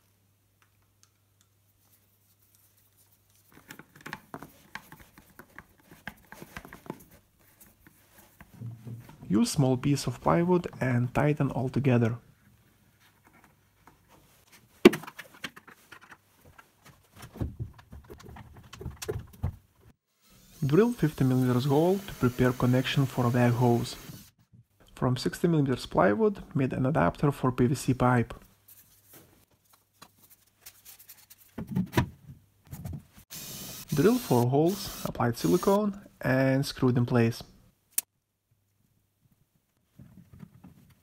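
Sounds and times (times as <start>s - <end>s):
cordless drill drilling: 33.3s - 35.8s.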